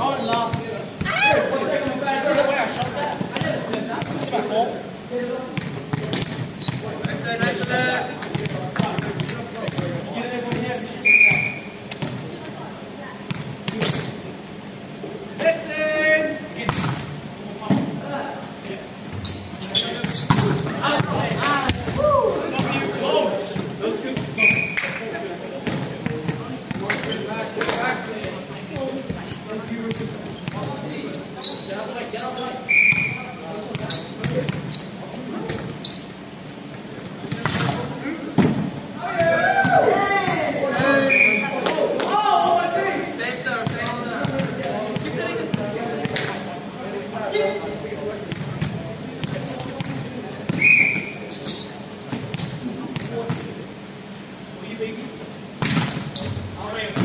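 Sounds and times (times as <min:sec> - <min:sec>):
players' voices echoing: 0:00.0 - 0:12.4, 0:19.7 - 0:51.4
short high squeaks: 0:05.2 - 0:05.5, 0:10.7 - 0:11.8, 0:19.1 - 0:20.8, 0:24.4 - 0:24.8, 0:31.1 - 0:33.3, 0:33.9 - 0:36.7, 0:50.6 - 0:52.7, 0:56.1 - 0:56.5
volleyball bouncing and struck: 0:32.8 - 0:33.2, 0:55.6 - 0:56.1.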